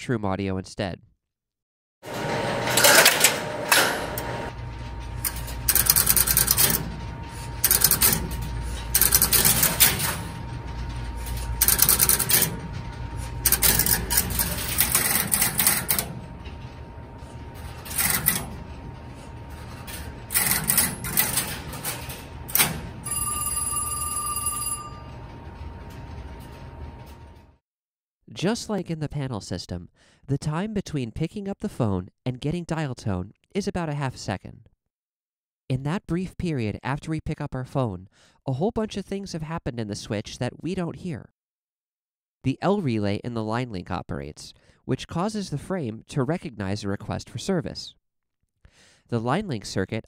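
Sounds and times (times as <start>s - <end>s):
relays clicking and clattering: 2.1s - 23.1s.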